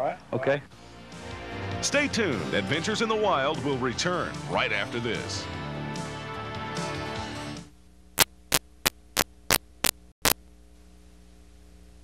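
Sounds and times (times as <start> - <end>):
steady electrical hum: 7.7 - 12.0
loud static crackles: 8.1 - 10.6.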